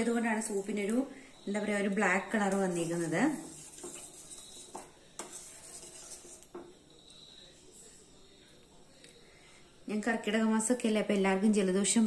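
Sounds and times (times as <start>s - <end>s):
spoon stirring soup: 0.8s - 9.7s.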